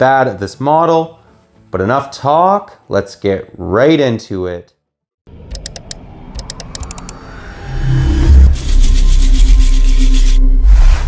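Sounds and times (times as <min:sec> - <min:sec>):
sharp clicks: 0:05.5 - 0:07.2.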